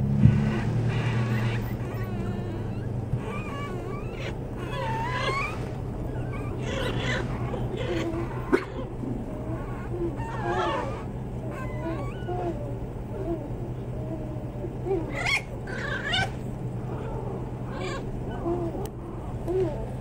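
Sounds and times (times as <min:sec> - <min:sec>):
steady low hum: 0:00.0 - 0:20.0
puppies whining and squeaking: 0:00.3 - 0:20.0.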